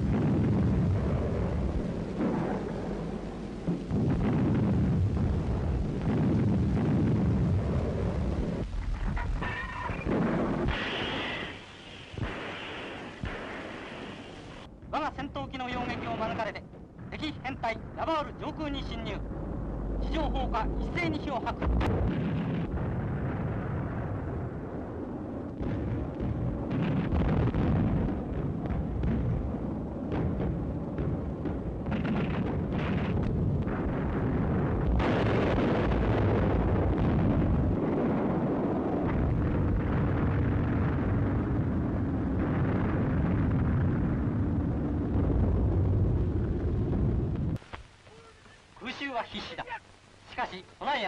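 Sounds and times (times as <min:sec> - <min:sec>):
explosions: 0:00.0 - 0:47.6
faint steady hum: 0:00.0 - 0:51.0
anti-aircraft guns firing: 0:08.8 - 0:14.7, 0:21.6 - 0:24.9, 0:25.6 - 0:45.6.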